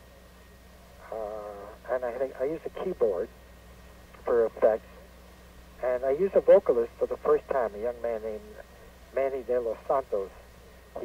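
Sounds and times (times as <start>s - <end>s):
faint steady hum: 0.0s - 11.0s
man speaking over telephone: 1.0s - 3.3s, 4.2s - 4.8s, 5.8s - 10.4s.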